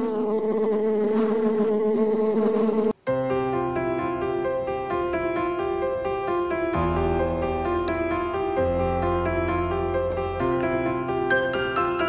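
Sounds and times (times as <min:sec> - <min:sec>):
honeybee buzzing: 0:00.0 - 0:03.0.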